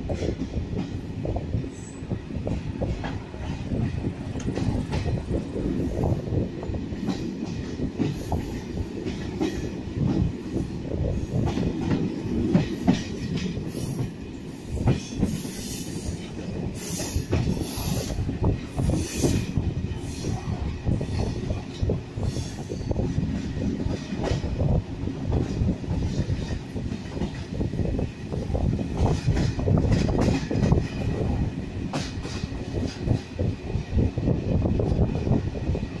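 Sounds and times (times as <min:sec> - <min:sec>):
train rumbling on track: 0:00.0 - 0:36.0
train wheels clattering over rails: 0:00.0 - 0:36.0.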